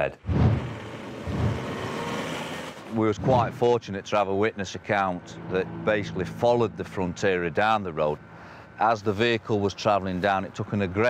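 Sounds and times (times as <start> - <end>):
car driving past: 0.3 - 3.7.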